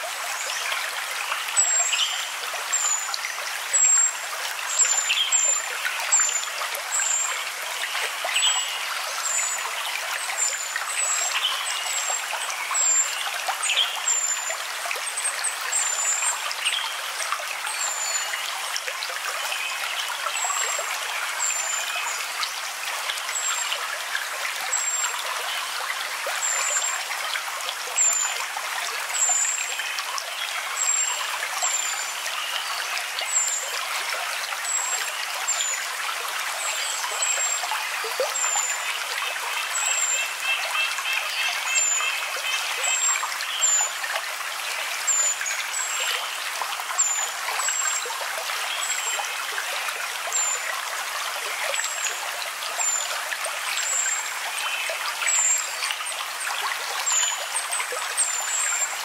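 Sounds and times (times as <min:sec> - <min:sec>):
water trickling: 0:00.0 - 0:59.0.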